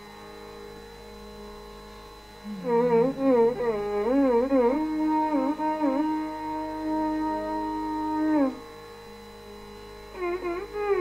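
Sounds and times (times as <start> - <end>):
tambura drone: 0.0 - 11.0
person singing: 2.5 - 8.2.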